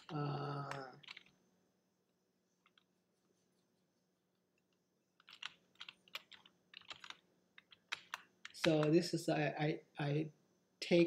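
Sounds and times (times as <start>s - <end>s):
computer keyboard typing: 0.0s - 1.3s, 2.6s - 2.9s, 5.2s - 9.1s.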